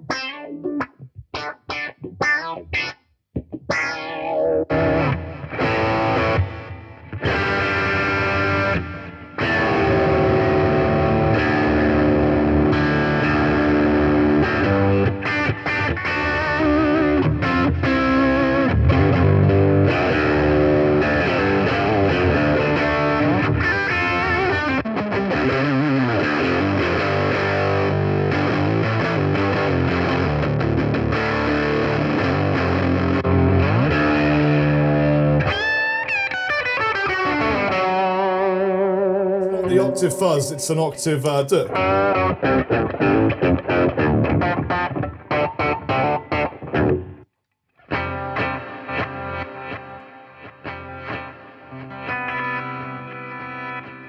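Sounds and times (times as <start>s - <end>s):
distorted electric guitar: 0.0s - 41.0s, 41.6s - 47.2s, 47.9s - 54.0s.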